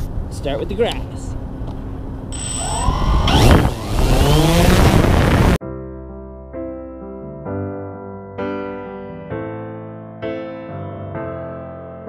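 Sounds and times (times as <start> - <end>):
drone propellers whirring: 2.3 - 5.6
electric piano music: 4.8 - 12.0.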